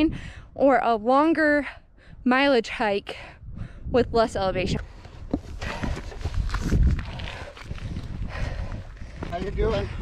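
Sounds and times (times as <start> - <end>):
wind rumbling on microphone: 0.0 - 0.9, 3.2 - 10.0
footsteps on rough rock: 4.8 - 10.0.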